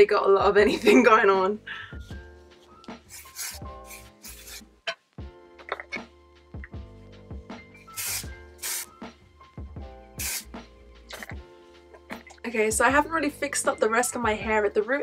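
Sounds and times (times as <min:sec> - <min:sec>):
quiet background music: 0:00.0 - 0:15.0
hair spray hissing: 0:03.1 - 0:04.7, 0:07.9 - 0:09.0, 0:10.2 - 0:10.5.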